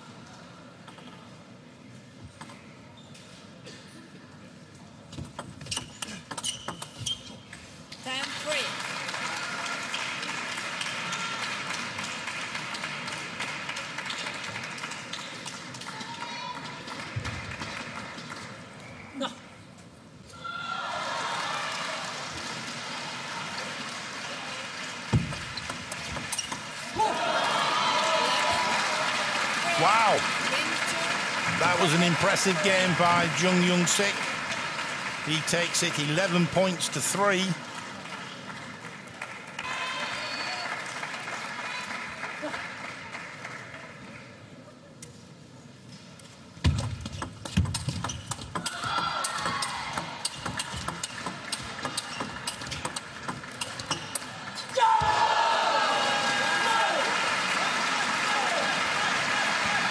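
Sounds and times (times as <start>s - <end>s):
crowd cheering and applauding: 8.5s - 18.2s, 20.6s - 25.2s, 26.7s - 43.9s, 54.4s - 59.9s.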